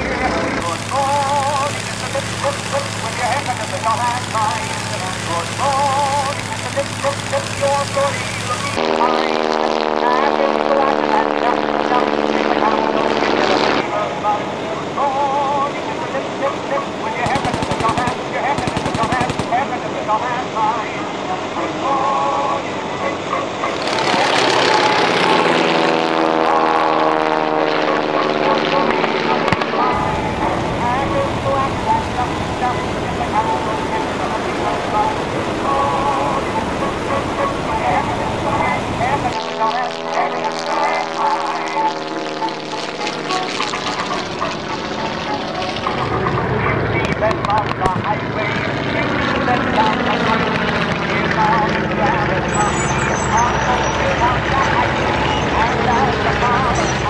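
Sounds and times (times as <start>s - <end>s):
propeller aircraft flying past: 0.0s - 57.0s
rapid sharp cracks: 0.6s - 8.8s, 17.2s - 19.7s.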